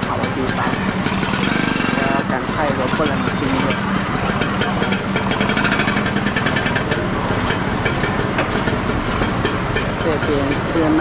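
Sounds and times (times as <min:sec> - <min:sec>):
people talking: 0:00.0 - 0:00.9, 0:02.0 - 0:03.8, 0:10.0 - 0:11.0
person speaking: 0:00.0 - 0:00.9, 0:02.0 - 0:03.8
busy street noise: 0:00.0 - 0:11.0
motorcycle engine running: 0:00.0 - 0:11.0.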